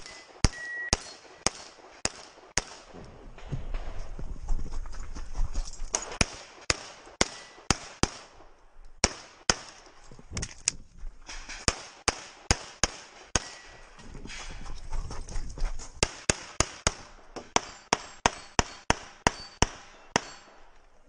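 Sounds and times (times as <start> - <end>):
pistol shots: 0.0 - 3.0, 5.9 - 9.9, 11.6 - 13.8, 16.0 - 20.7.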